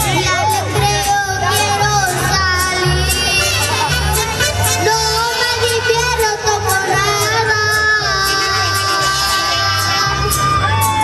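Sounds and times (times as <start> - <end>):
boy singing into microphone: 0.0 - 3.8, 4.6 - 10.5
mariachi music: 0.0 - 11.0
pulsing bass: 0.0 - 11.0.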